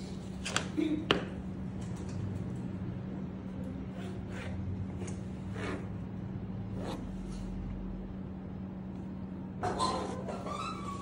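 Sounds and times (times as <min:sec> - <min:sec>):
steady low hum: 0:00.0 - 0:10.7.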